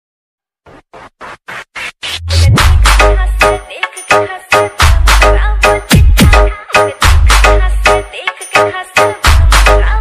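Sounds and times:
dj scratching: 0.7s - 3.0s.

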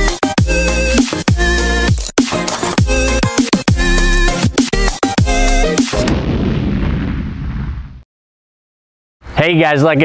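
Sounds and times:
deep boom with rumbling tail: 6.0s - 8.0s.

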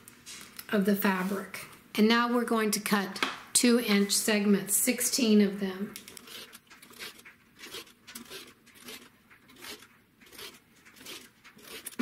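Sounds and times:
rotary cutter slicing fabric: 6.1s - 12.0s.

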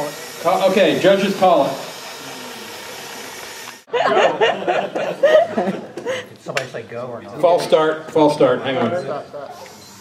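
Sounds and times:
small electric motors straining: 0.0s - 3.9s, 9.5s - 10.0s.

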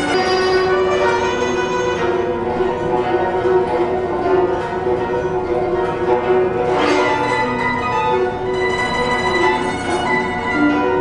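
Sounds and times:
guzheng plucked notes: 0.0s - 11.0s.

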